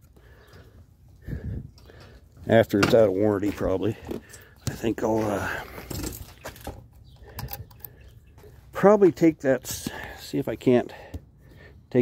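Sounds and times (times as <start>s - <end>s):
man speaking: 4.7s - 5.6s, 8.8s - 11.0s.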